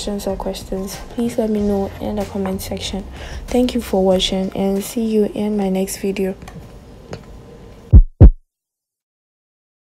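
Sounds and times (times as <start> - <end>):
deep bass thumps: 7.9 - 8.4.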